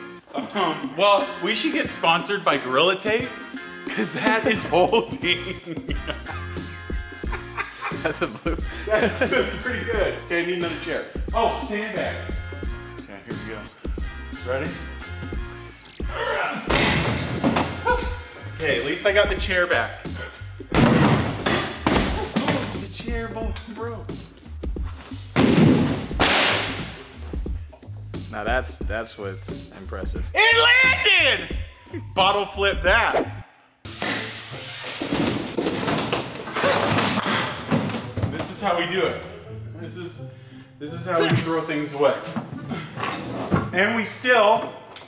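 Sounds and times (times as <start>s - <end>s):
chair clattering: 35.0s - 38.7s, 42.2s - 43.9s.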